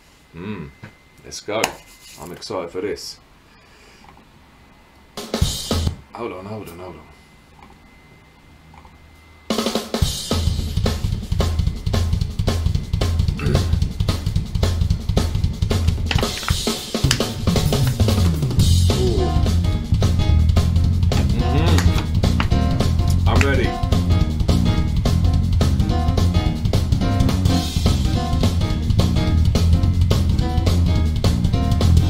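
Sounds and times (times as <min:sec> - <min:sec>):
jazz-fusion drum kit playing: 0:05.2 - 0:06.0, 0:09.5 - 0:32.0.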